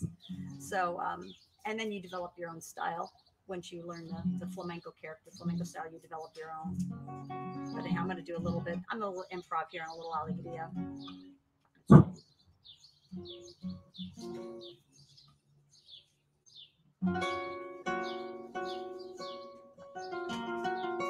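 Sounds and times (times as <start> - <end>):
flamenco classical guitar: 0.0 - 0.7, 5.4 - 9.0, 11.9 - 12.2, 13.2 - 14.7, 17.0 - 21.0.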